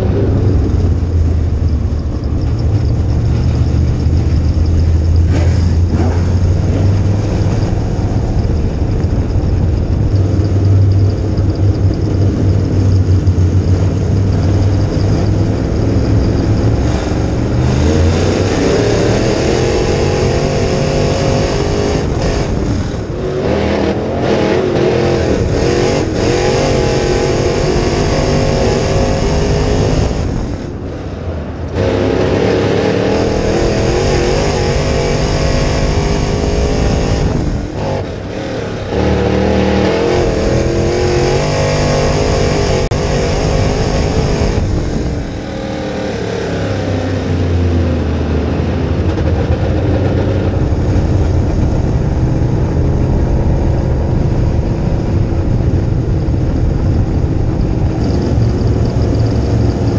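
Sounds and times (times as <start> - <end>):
race car engine revving: 0.0 - 59.9.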